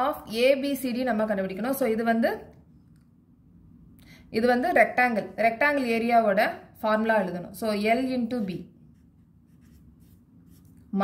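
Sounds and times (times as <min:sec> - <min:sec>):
felt-tip pen scratching on paper: 0:08.9 - 0:10.8.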